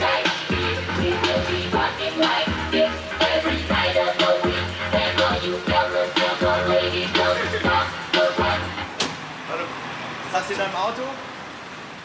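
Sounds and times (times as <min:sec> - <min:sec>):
music: 0:00.0 - 0:09.1
vehicle noise: 0:00.0 - 0:12.0
people talking: 0:09.5 - 0:11.2.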